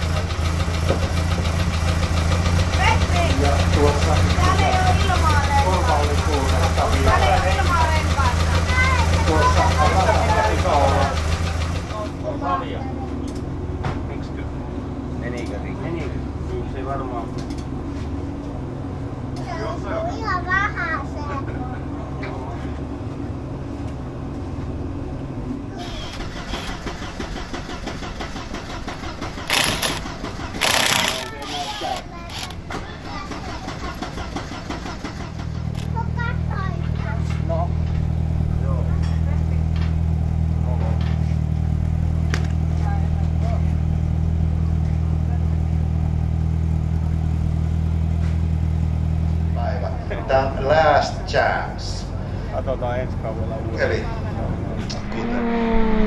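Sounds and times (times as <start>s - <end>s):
engine idling: 0.0s - 55.2s
people talking: 2.8s - 11.2s, 30.9s - 33.9s, 35.8s - 37.8s, 42.8s - 43.8s, 49.6s - 55.7s
low hum: 53.6s - 56.0s.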